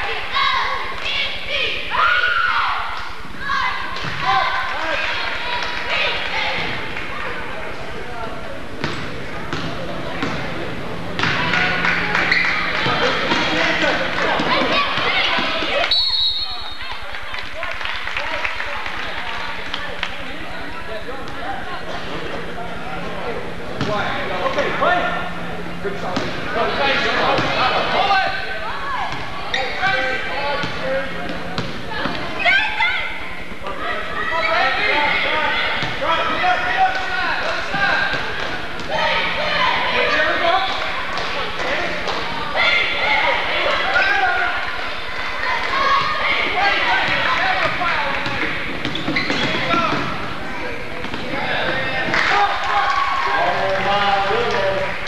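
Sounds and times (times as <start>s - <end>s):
crowd shouts and chatter: 0.0s - 55.0s.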